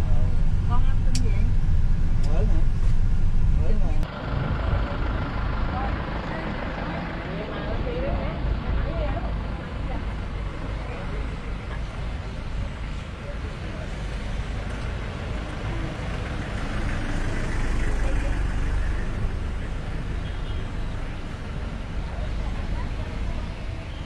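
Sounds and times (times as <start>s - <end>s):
steady low rumble: 0.0s - 13.2s.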